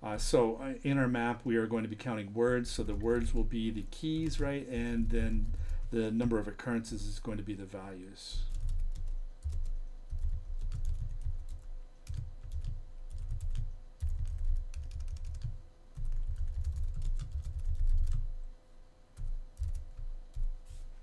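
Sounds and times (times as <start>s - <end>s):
faint steady hum: 0.0s - 21.0s
typing on computer keyboard: 8.5s - 18.2s, 19.2s - 20.5s.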